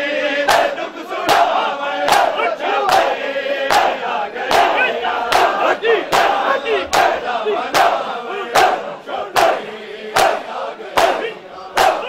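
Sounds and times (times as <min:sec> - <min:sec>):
men shouting and chanting: 0:00.0 - 0:12.0
people slapping chests in unison: 0:00.4 - 0:12.0.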